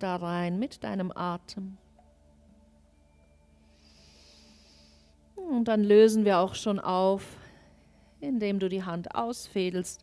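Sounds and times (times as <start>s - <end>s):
faint musical drone: 0.0s - 10.0s.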